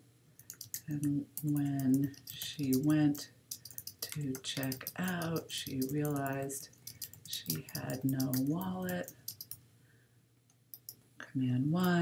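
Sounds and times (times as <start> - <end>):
keyboard keystrokes: 0.4 - 2.9, 3.5 - 9.6.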